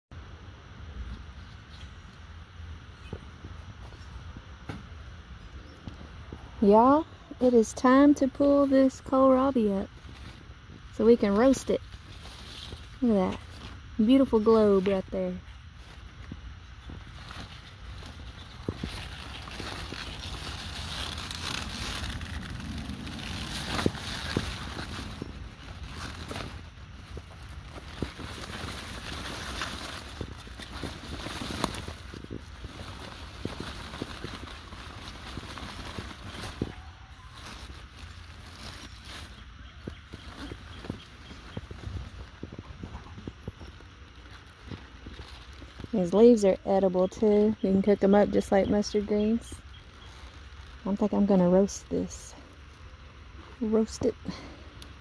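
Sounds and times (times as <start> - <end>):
leaves rustling and crackling: 0.7 - 55.0.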